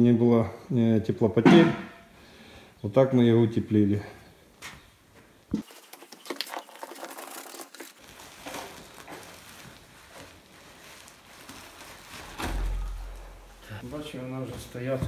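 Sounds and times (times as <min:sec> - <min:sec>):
foil insulation crinkling: 0:05.6 - 0:15.0.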